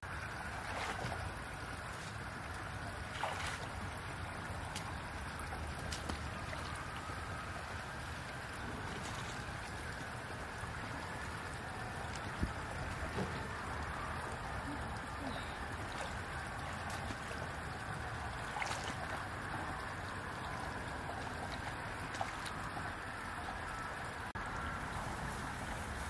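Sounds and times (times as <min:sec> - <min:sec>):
rushing water: 0:00.0 - 0:26.0
wind: 0:00.0 - 0:26.0
hands splashing in stream: 0:00.4 - 0:07.5, 0:15.5 - 0:23.0.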